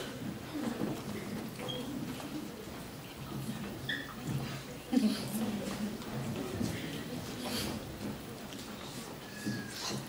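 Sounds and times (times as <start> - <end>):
murmur of low voices: 0.0 - 10.0.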